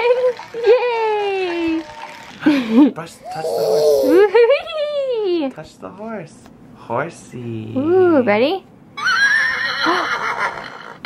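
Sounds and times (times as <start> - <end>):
toy horse neigh: 9.0 - 11.0.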